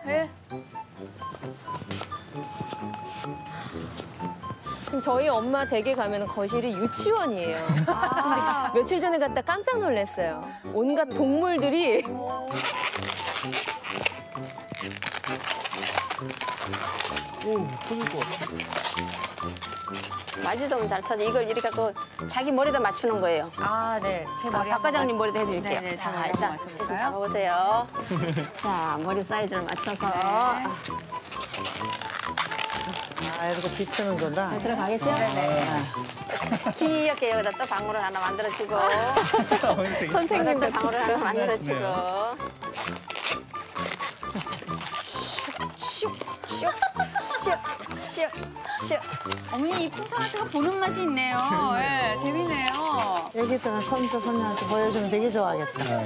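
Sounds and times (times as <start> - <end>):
balloons rubbing and squeaking: 0.0 - 10.4, 11.2 - 56.0
background music with beat: 0.0 - 56.0.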